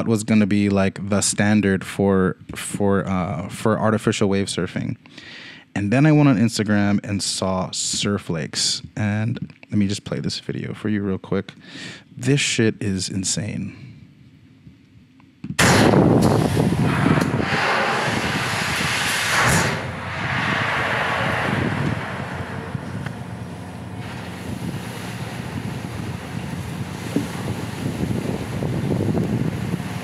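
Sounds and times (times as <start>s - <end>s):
rushing water wave: 16.5s - 30.0s.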